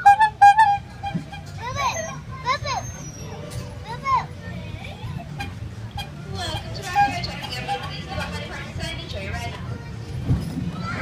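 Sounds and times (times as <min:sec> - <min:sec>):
toddler babbling squeals: 0:01.6 - 0:04.3.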